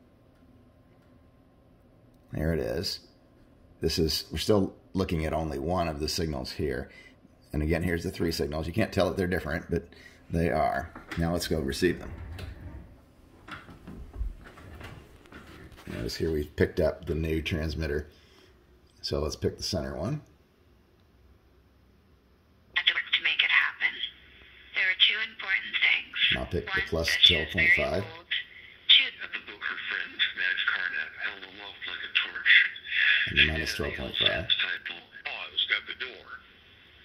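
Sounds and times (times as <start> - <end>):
low room hum: 0.0 - 37.0
soft knocks and bumps: 12.0 - 16.0
radio voice speaking: 24.7 - 36.8.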